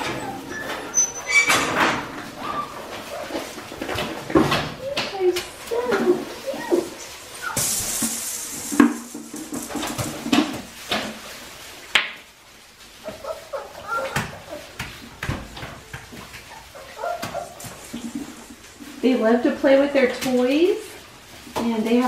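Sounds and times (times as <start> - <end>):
puppies whimpering and yipping: 0.0 - 3.6, 4.7 - 7.7, 12.9 - 14.8, 16.4 - 18.0
hissing rustle: 0.0 - 15.2, 15.8 - 22.0.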